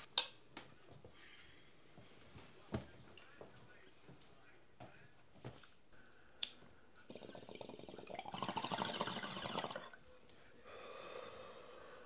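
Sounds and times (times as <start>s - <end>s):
water bubbling in bong: 7.1s - 10.0s.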